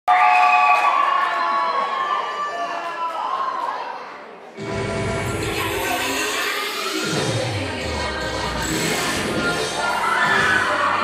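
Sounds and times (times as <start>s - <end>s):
crowd cheering and screaming: 0.1s - 4.1s, 8.7s - 11.0s.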